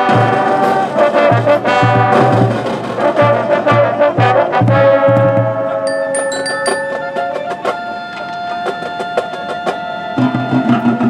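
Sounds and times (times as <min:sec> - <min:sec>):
marching band held tones: 0:00.0 - 0:11.0
high mallet percussion notes: 0:05.9 - 0:07.7.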